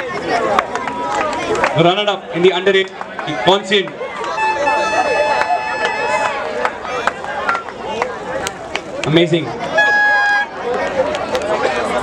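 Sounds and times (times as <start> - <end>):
crowd chattering: 0.0 - 12.0.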